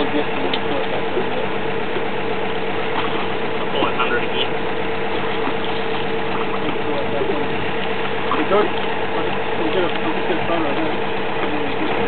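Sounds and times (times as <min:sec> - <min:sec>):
drilling rig engine running: 0:00.0 - 0:12.0
faint voices: 0:00.0 - 0:12.0.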